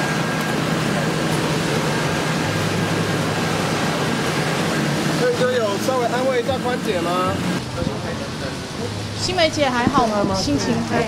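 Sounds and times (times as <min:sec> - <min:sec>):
low hum: 0:00.0 - 0:11.0
street traffic noise: 0:00.0 - 0:11.0.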